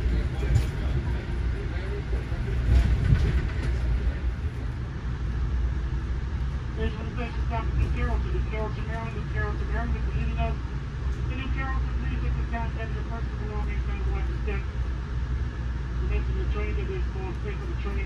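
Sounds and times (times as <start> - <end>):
train coach rumbling on track: 0.0 - 18.0.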